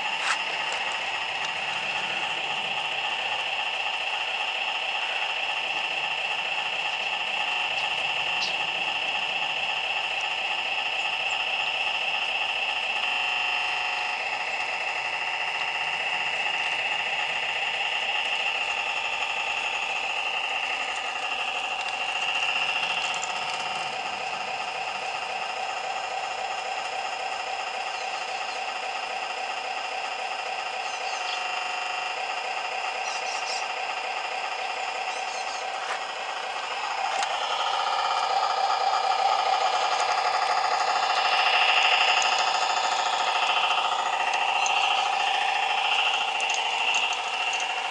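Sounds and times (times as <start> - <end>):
electronic diesel engine sound: 0.0 - 47.9.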